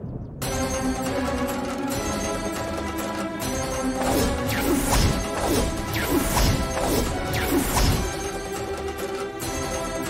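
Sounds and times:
dramatic music score: 0:00.0 - 0:10.0.

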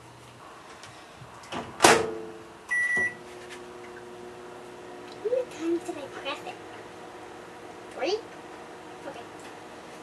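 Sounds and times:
microwave humming: 0:01.4 - 0:10.0
keypad beep: 0:02.7 - 0:03.2.

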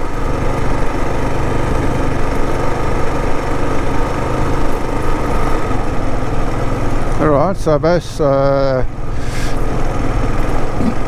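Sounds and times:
motorcycle engine humming: 0:00.0 - 0:11.0.

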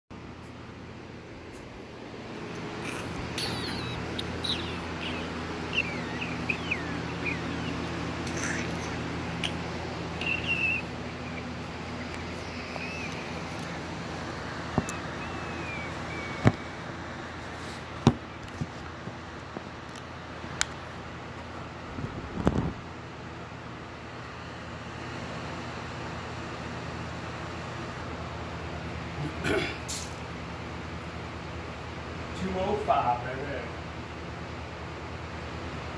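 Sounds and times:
steady hum: 0:00.1 - 0:35.9.

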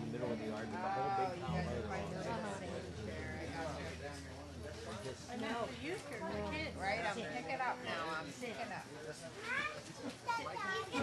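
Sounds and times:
sustained low notes: 0:00.0 - 0:08.2
guitar accompaniment: 0:00.0 - 0:08.3.

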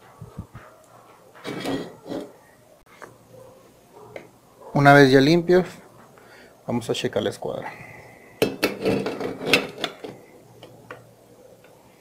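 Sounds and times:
metal tubes clinking and scraping: 0:01.4 - 0:02.4, 0:08.5 - 0:10.2.

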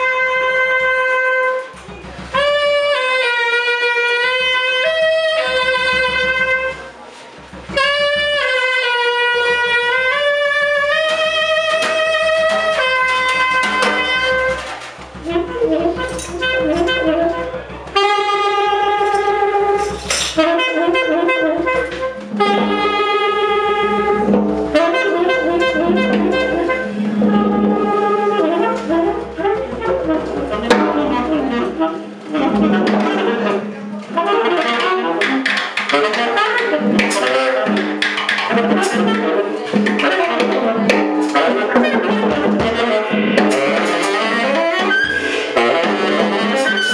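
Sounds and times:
drums and cymbals: 0:00.0 - 0:46.9
tenor saxophone improvising: 0:00.0 - 0:46.9.

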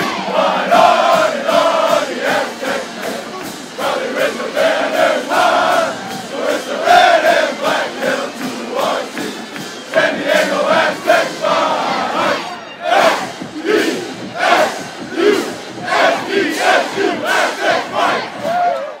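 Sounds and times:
group chanting and shouting: 0:00.0 - 0:19.0.

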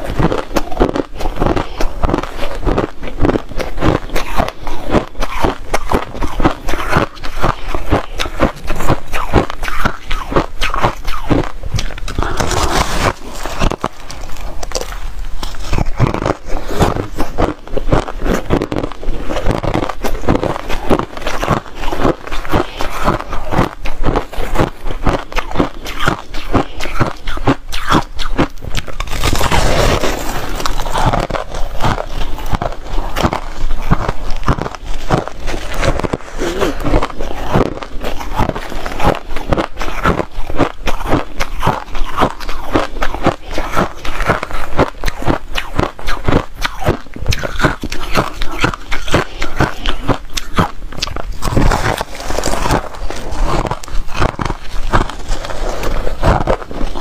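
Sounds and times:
shaved ice crunching: 0:00.2 - 0:57.0.

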